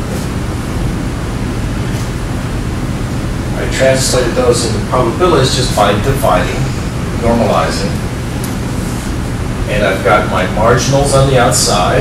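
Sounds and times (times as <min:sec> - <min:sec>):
steady rushing room noise: 0:00.0 - 0:12.0.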